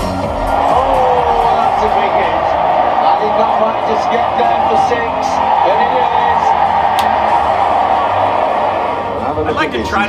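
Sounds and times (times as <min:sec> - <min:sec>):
stadium crowd noise: 0:00.0 - 0:10.0
commentator speaking: 0:03.0 - 0:06.6.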